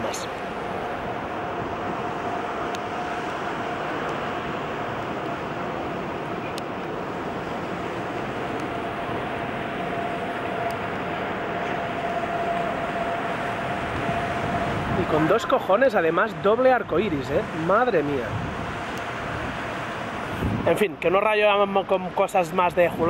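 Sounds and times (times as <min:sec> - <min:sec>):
thin steady hum: 0:00.0 - 0:22.3
distant traffic rush: 0:00.0 - 0:23.0.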